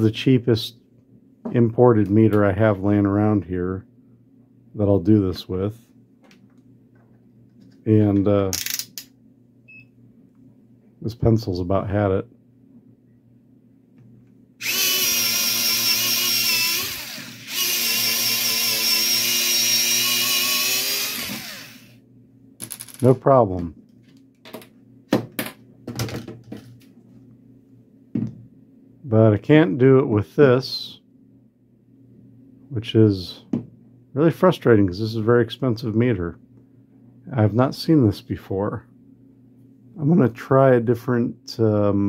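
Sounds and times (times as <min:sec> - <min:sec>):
faint low hum: 0:00.0 - 0:20.2
multimeter beep: 0:09.7 - 0:09.9.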